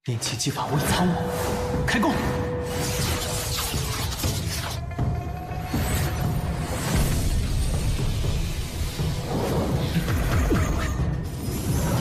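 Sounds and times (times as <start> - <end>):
background music sustained tone: 0.0 - 12.0.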